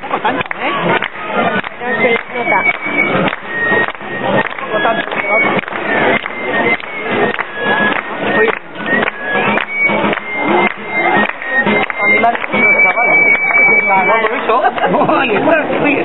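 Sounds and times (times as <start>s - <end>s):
high piped melody: 0.0s - 14.8s
crowd talking: 0.0s - 16.0s
steady drum beat: 0.0s - 16.0s.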